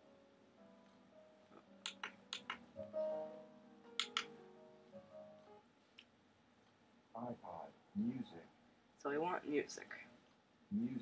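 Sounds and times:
faint music from speaker: 0:00.0 - 0:05.9
sharp click: 0:01.8 - 0:02.6, 0:04.0 - 0:04.3.

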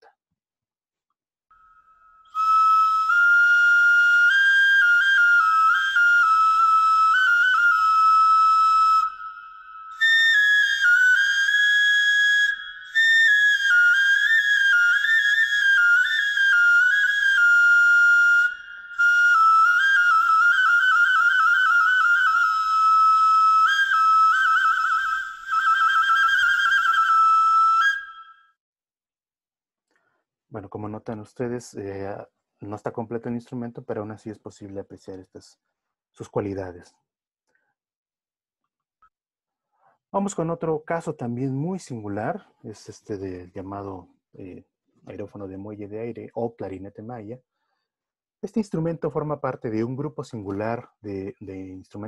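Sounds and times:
whistle-like ceramic flute melody: 0:01.5 - 0:28.6.

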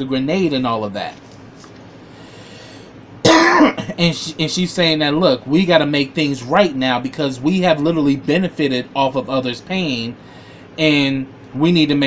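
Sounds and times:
man coughing: 0:03.2 - 0:04.0
man clearing throat: 0:03.3 - 0:04.0.

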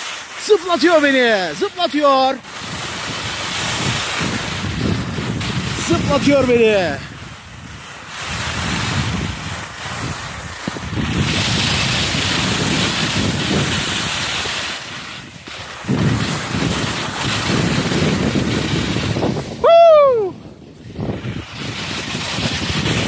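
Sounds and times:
skis hissing and scraping on snow: 0:00.0 - 0:23.0
wind rushing over microphone: 0:00.0 - 0:23.0.

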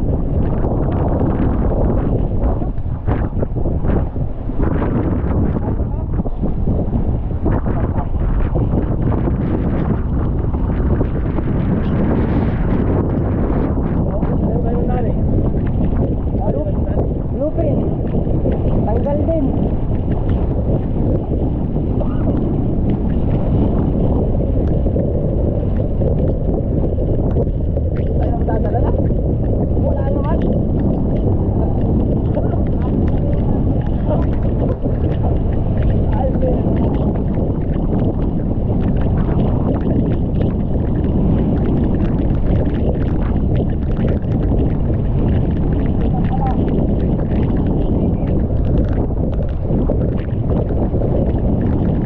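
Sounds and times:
water splashing against hull: 0:00.0 - 0:52.0
wind buffeting microphone: 0:00.0 - 0:52.0.

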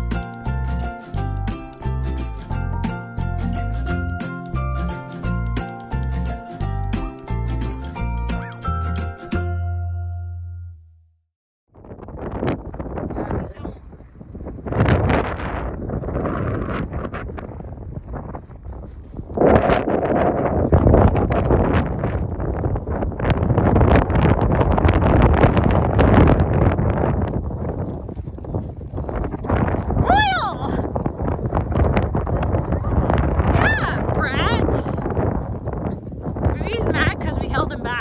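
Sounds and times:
gusty wind buffeting microphone: 0:11.7 - 0:38.0.

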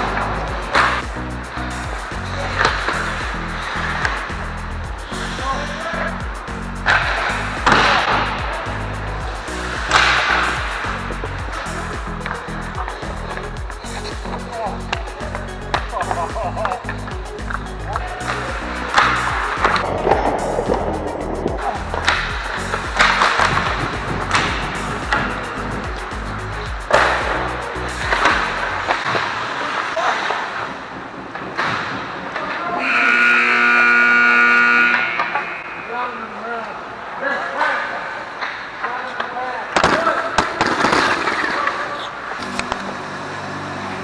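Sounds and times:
hockey sticks and puck clacking: 0:00.0 - 0:01.1, 0:01.8 - 0:05.9, 0:06.8 - 0:14.3, 0:14.9 - 0:32.9, 0:35.2 - 0:35.6, 0:38.4 - 0:42.8
background music with beat: 0:00.0 - 0:29.2
players' voices: 0:00.0 - 0:30.9
skate blades scraping ice: 0:18.2 - 0:26.2.

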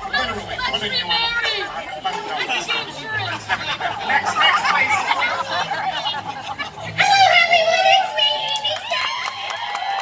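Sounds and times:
overlapping indistinct talking: 0:00.0 - 0:10.0.

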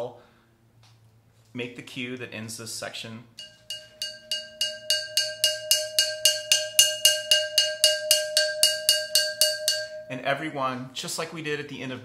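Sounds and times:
mallet striking ceramic flowerpot: 0:03.4 - 0:10.4.

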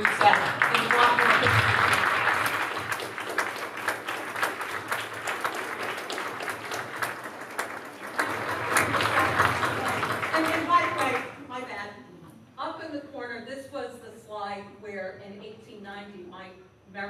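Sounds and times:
audience applause: 0:00.0 - 0:11.3.

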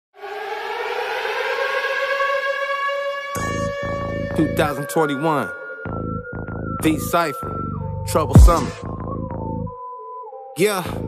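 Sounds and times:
siren-like wail rising in pitch: 0:00.2 - 0:10.1.

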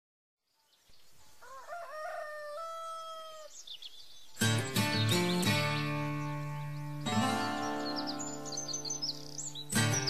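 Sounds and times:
rooster crowing: 0:01.4 - 0:03.5.

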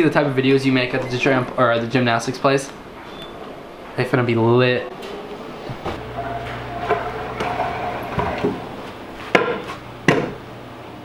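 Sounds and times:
scooter clatters: 0:05.9 - 0:10.4.

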